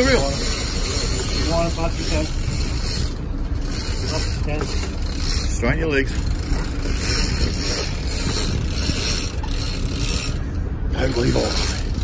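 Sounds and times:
boat engines running: 0:00.0 - 0:12.0
wind: 0:00.0 - 0:12.0.

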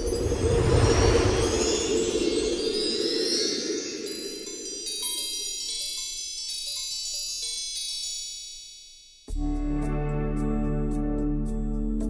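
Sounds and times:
chimes intro music: 0:00.0 - 0:09.2.

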